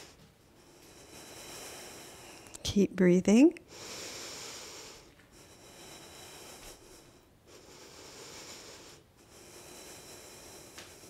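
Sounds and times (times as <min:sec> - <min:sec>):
person breathing slowly: 0:00.0 - 0:02.6, 0:03.7 - 0:11.0.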